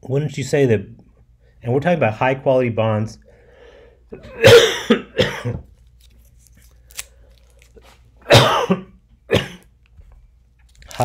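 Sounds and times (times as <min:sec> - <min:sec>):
man coughing: 0:04.2 - 0:05.6, 0:08.2 - 0:09.7.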